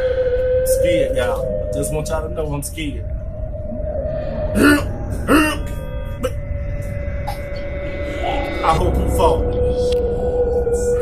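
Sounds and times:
droning hum: 0.0s - 11.0s
low rumble: 0.0s - 11.0s
cough-like voice sounds: 4.6s - 6.4s.

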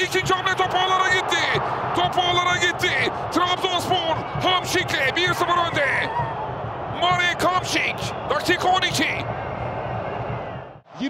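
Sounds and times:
commentator speaking: 0.0s - 6.1s, 7.0s - 9.2s
stadium crowd noise: 0.0s - 11.0s.

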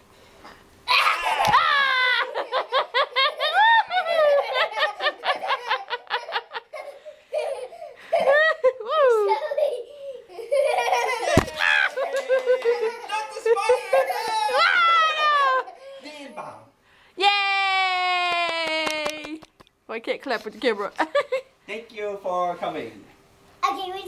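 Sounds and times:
girl laughing hard: 0.9s - 16.0s
thump: 11.3s - 11.6s.

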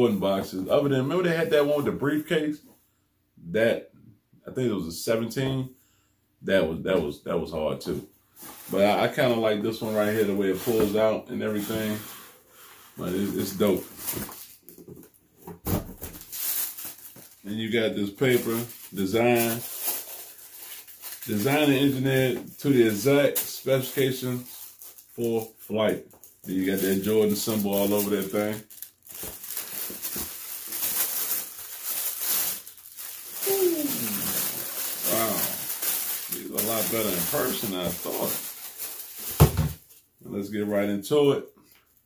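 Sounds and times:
plastic bag crinkling: 13.0s - 15.2s, 16.1s - 40.0s
man's falling vocal sound: 33.4s - 34.5s.

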